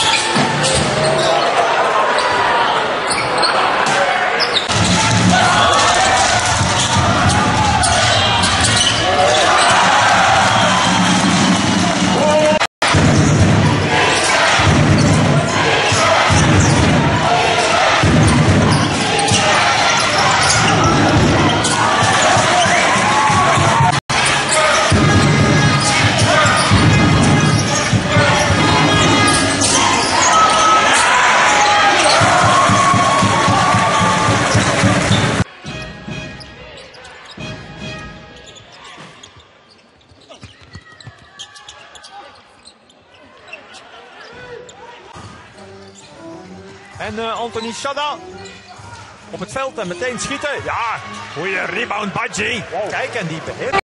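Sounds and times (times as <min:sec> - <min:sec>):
crowd noise and voices: 0:00.0 - 0:53.8.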